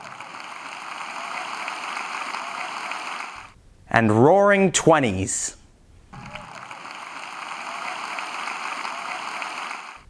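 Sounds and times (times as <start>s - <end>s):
audience applauding: 0.0s - 3.6s, 6.2s - 10.0s.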